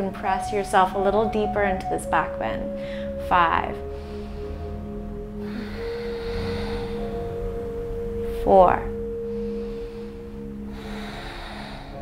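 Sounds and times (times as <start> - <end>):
soft ambient music: 0.0 - 12.0
long soft breath: 2.7 - 3.2, 3.8 - 8.0, 9.0 - 12.0.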